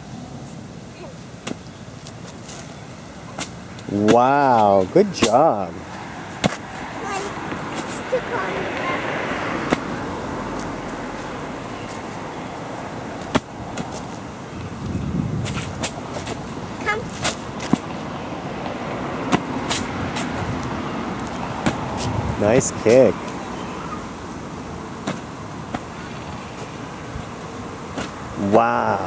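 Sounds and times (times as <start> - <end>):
beach ball slapping on concrete: 6.4 - 6.6.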